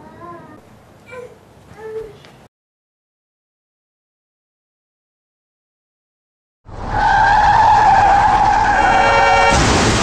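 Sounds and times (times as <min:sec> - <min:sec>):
car tyres screeching: 0:06.7 - 0:09.6
loud crash: 0:07.4 - 0:10.0.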